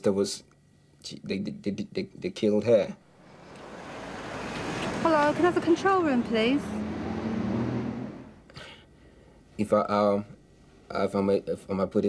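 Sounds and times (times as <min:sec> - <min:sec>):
street background hiss: 0:00.0 - 0:12.0.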